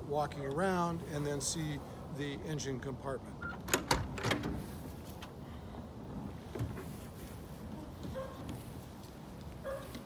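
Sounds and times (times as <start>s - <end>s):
low steady background noise: 0.0s - 10.0s
person climbing out of car: 3.4s - 10.0s.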